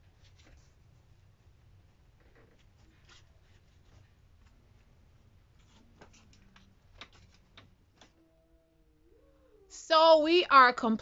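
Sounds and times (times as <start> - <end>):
faint clicks and taps: 5.5 - 8.2.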